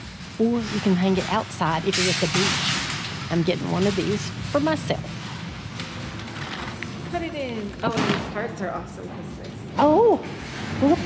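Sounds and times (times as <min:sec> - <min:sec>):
large shop background noise: 0:00.0 - 0:11.0.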